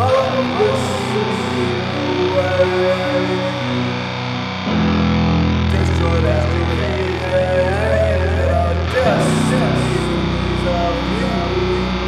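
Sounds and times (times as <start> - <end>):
punk band with distorted guitars: 0.0 - 12.0.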